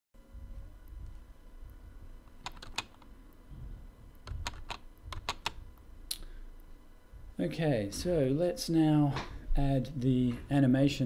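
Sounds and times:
computer keyboard keys clicking: 2.4 - 3.1, 4.2 - 5.6.

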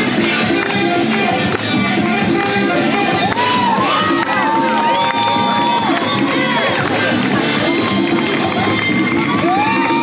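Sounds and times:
music with steady beat: 0.0 - 10.0
crowd cheering and whooping: 3.1 - 10.0.

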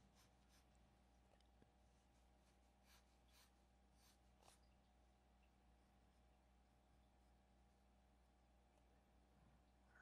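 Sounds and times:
pencil scratching on paper: 0.0 - 0.9, 1.9 - 4.7
steady low hum: 0.0 - 10.0.

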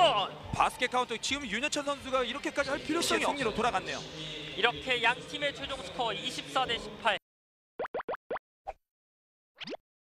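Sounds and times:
cartoon bloop pops: 7.8 - 8.8, 9.6 - 9.8.

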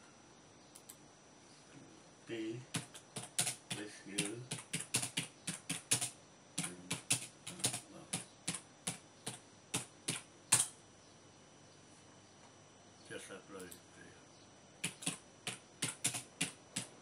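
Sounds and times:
typing on keyboard: 2.7 - 10.7, 14.8 - 17.0.

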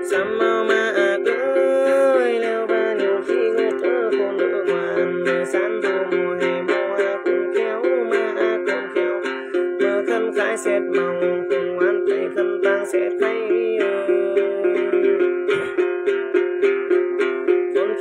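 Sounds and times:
man singing a gliding chant: 0.0 - 15.0
plucked gourd lute: 0.0 - 18.0.

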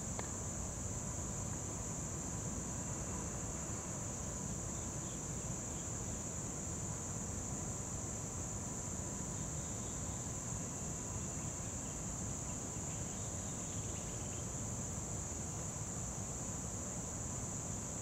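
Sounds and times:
insects droning: 0.0 - 18.0.

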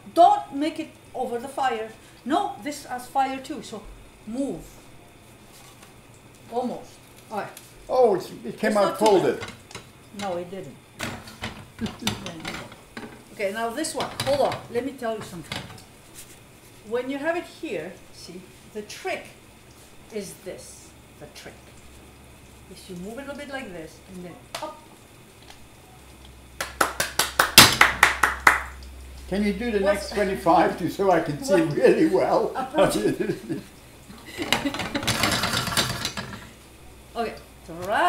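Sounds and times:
pans and utensils clinking: 8.8 - 13.3, 13.9 - 15.8, 34.3 - 36.6
hands clapping: 26.6 - 28.8.

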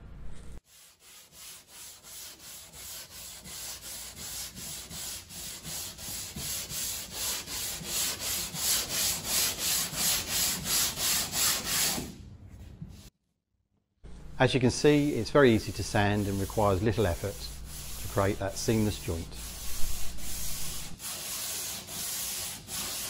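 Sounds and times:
sanding block rubbing on wall: 0.6 - 12.2, 15.0 - 23.0.

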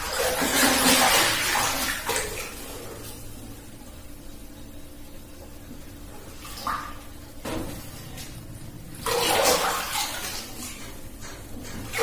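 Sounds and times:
water splashing in plastic tub: 0.0 - 3.1, 6.4 - 8.3, 9.0 - 11.0.

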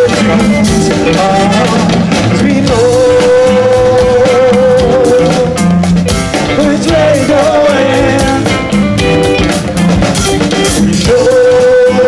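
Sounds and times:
live ska-funk band playing: 0.0 - 12.0.

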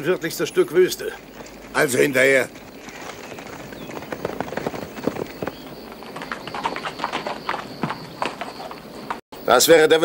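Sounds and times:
hooves clattering on rocky ground: 0.3 - 9.2.

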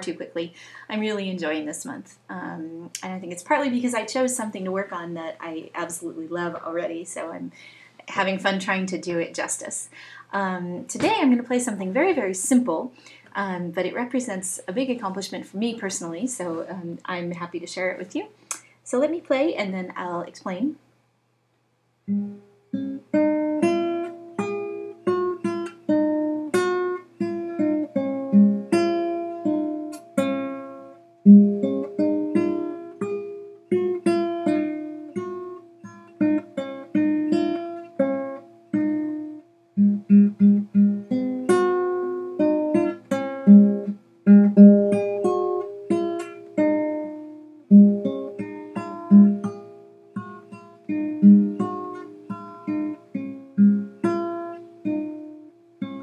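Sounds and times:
classical guitar melody: 22.0 - 56.0.

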